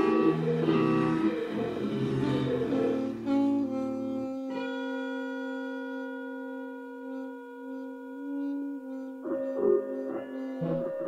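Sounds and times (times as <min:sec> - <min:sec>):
long sustained musical note: 0:00.0 - 0:11.0.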